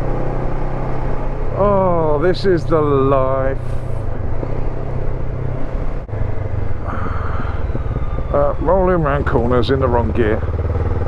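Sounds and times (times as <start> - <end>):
motorcycle engine running: 4.1 - 11.0.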